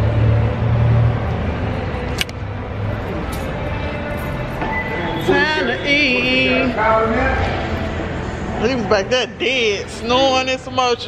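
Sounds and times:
vehicle rumble in parking garage: 0.0 - 11.0.

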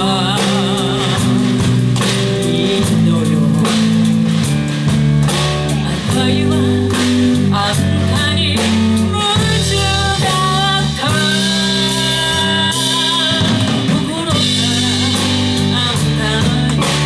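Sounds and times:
drum kit beat: 0.0 - 17.0
electric guitars: 0.0 - 17.0
person singing: 0.0 - 17.0.

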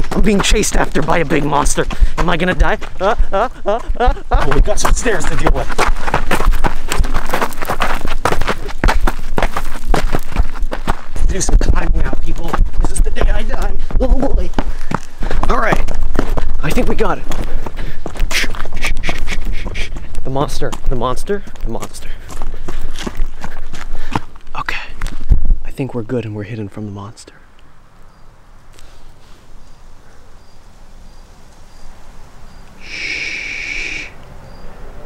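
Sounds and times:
running footsteps on gravel: 0.0 - 25.7.

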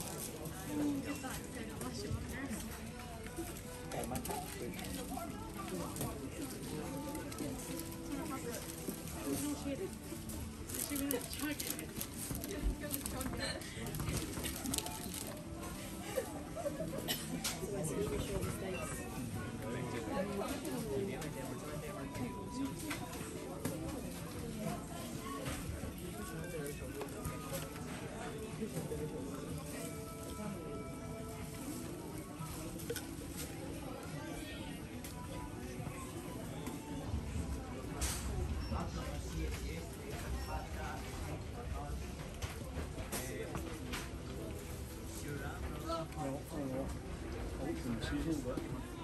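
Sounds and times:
background music: 0.0 - 37.9
murmur of shoppers' voices: 0.0 - 49.0
clicks and rustles of packaging: 2.5 - 15.8.

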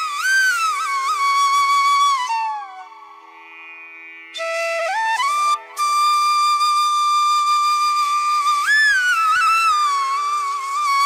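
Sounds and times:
flute holding a high note: 4.4 - 11.0.

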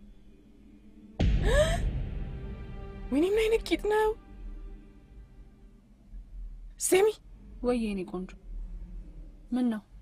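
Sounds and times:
dramatic music hit: 1.2 - 5.8
woman gasping: 1.4 - 1.9.

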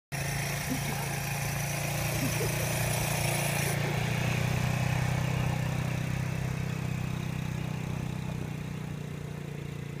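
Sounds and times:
quad bike engine driving off: 0.1 - 10.0.

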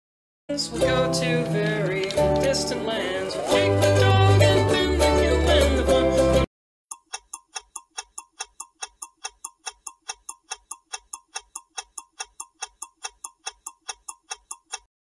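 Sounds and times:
clock ticking: 6.9 - 14.9.

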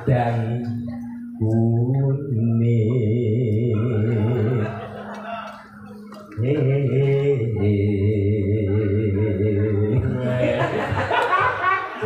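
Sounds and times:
electronic keyboard organ chords: 0.0 - 12.0.

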